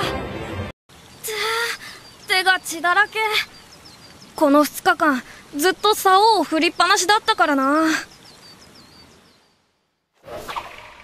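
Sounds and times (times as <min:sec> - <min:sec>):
birds chirping: 0:00.9 - 0:10.1.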